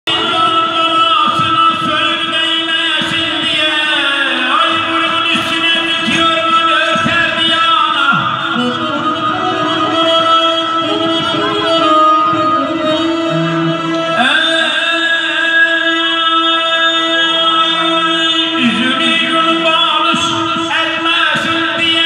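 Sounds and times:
man singing into microphone: 0:00.0 - 0:22.0.

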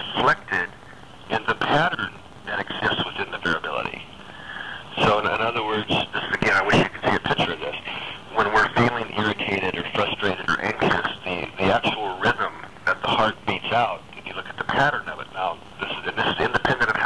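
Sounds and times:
conversational speech: 0:00.0 - 0:17.0.

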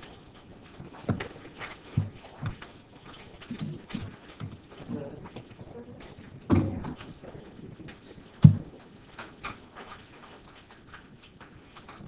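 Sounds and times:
knocks and thumps from desks: 0:00.0 - 0:12.0
faint murmured voices: 0:04.7 - 0:08.9.

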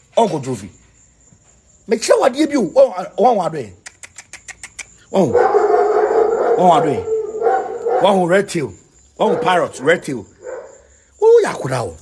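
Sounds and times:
howl-like vocal sound: 0:05.2 - 0:08.2.

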